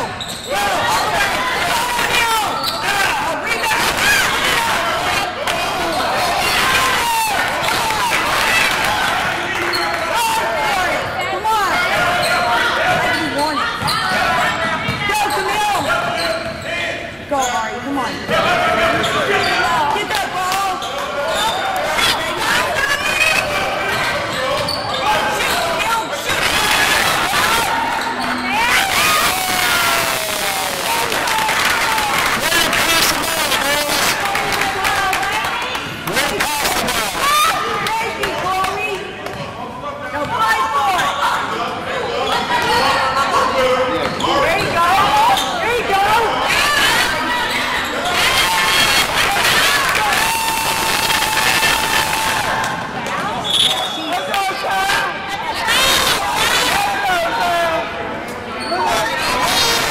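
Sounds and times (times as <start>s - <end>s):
people calling out in echoing hall: 0.0s - 59.9s.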